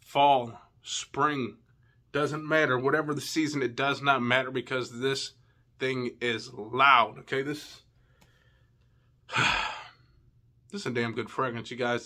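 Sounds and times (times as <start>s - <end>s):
man sighing: 9.3s - 10.2s.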